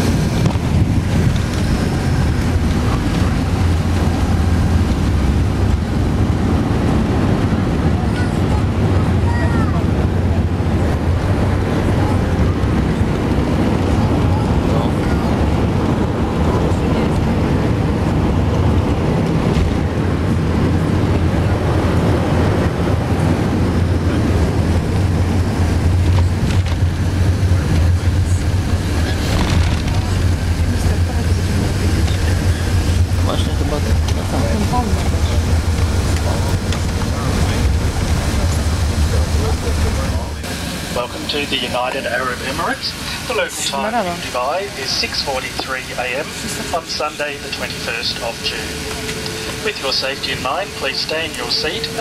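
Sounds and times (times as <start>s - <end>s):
aircraft cabin low rumble: 0.0s - 52.0s.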